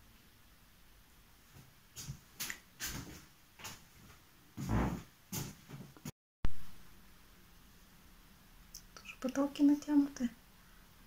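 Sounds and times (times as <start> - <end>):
footsteps knocking and scuffing: 1.5 - 6.1.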